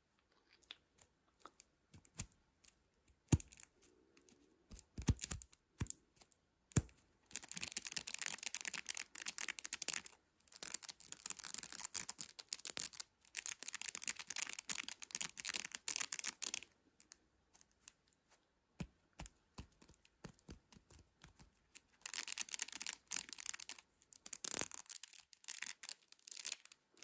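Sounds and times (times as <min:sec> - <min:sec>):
marble clicking in mesh tube: 0:22.0 - 0:26.8.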